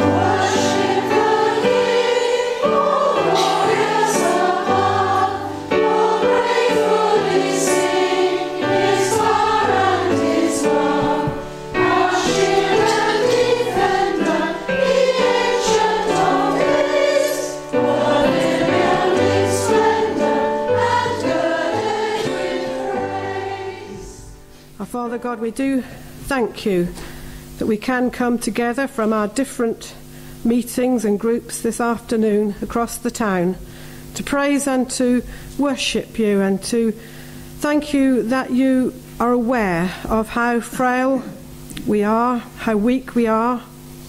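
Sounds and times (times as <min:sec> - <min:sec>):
women singing a hymn: 0:00.0 - 0:24.5
instrumental accompaniment: 0:00.0 - 0:24.8
singers breathing: 0:33.6 - 0:34.1, 0:37.0 - 0:37.6.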